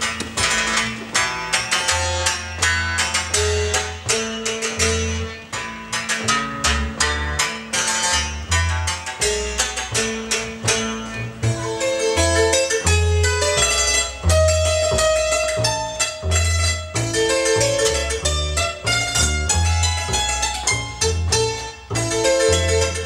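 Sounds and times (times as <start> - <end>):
double bass plucked: 0.0 - 23.0
plucked string instrument run: 0.0 - 23.0.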